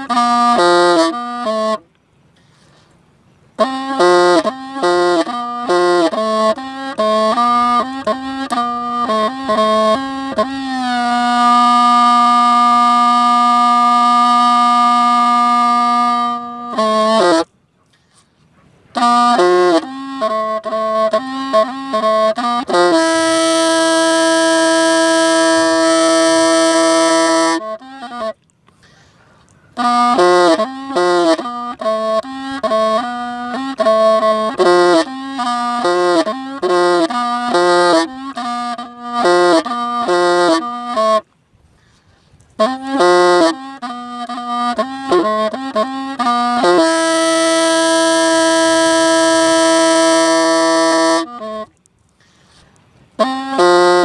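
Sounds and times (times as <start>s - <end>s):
bamboo pipe melody: 0.0s - 54.0s.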